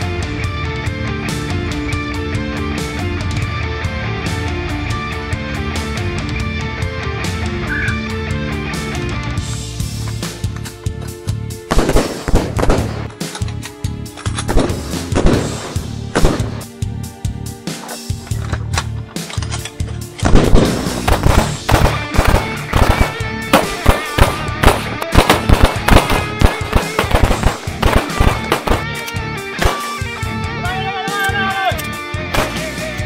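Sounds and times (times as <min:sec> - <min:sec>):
rock music with electric guitar: 0:00.0 - 0:33.0
handgun shots: 0:11.7 - 0:13.5, 0:14.4 - 0:16.7, 0:20.2 - 0:30.0, 0:32.3 - 0:32.6.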